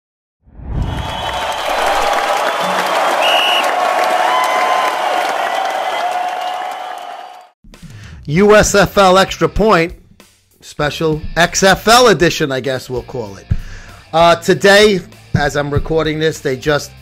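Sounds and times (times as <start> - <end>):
stadium crowd cheering and applauding: 0.7 - 7.6
music: 7.6 - 17.0.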